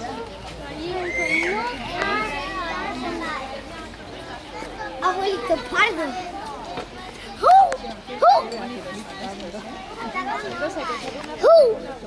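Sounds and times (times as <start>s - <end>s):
children talking and calling: 0.0s - 12.0s.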